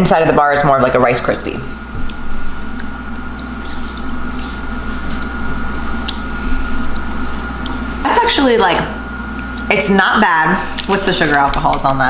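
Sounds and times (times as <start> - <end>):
low hum: 0.0 - 12.0
wet chewing: 2.0 - 7.9, 10.7 - 11.6.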